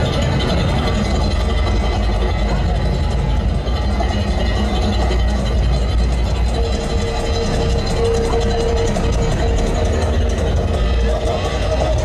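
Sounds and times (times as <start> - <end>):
crowd noise: 0.0 - 12.0
music: 0.0 - 12.0
steady held tone: 0.0 - 12.0
truck low rumble: 0.0 - 12.0.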